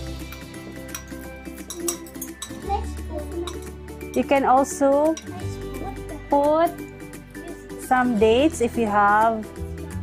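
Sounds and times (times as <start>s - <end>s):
light background music: 0.0s - 10.0s
metal spoon clinking on glass bowl: 0.3s - 2.8s, 3.4s - 5.5s.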